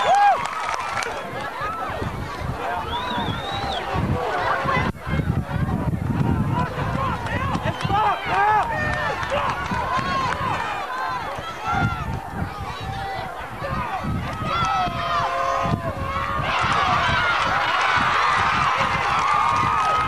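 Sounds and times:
crowd shouting: 0.0 - 20.0.

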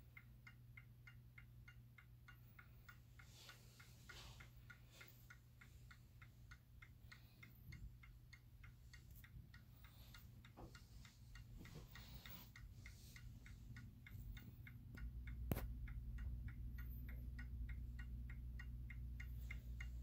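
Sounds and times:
clock ticking: 0.0 - 20.0.

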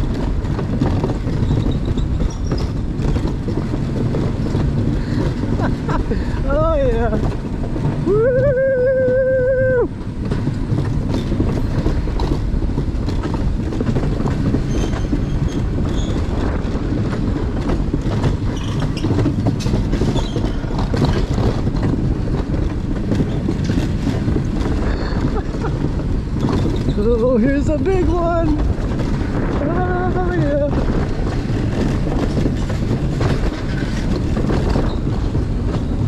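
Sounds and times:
wheels rumbling on track: 0.0 - 36.0
person shouting: 8.1 - 9.9.

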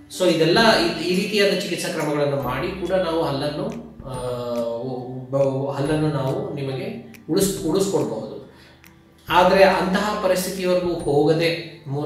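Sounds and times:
man speaking slowly: 3.6 - 6.3.

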